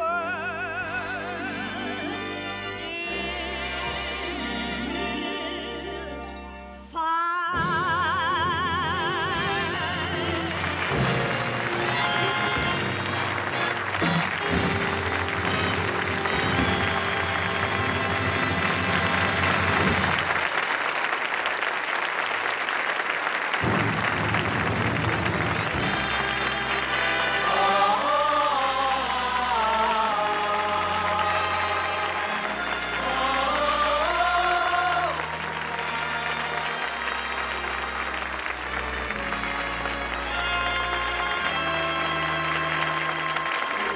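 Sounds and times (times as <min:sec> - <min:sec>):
orchestra playing a melody: 0:00.0 - 0:20.6, 0:23.6 - 0:43.9
audience applauding: 0:09.4 - 0:43.9.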